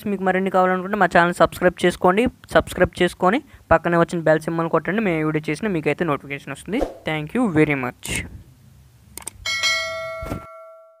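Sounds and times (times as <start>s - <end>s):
bell chime: 9.5s - 11.0s.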